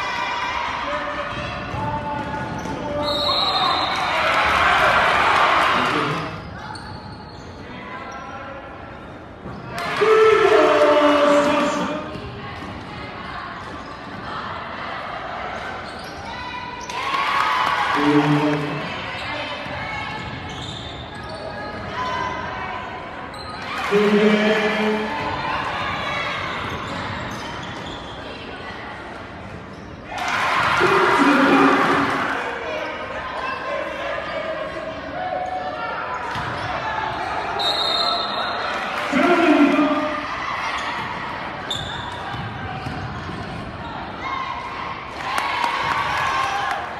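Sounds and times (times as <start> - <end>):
crowd noise: 0.0 - 46.9
voices echoing in hall: 0.0 - 46.9
basketball bouncing on wooden court: 1.3 - 2.9, 41.0 - 43.8.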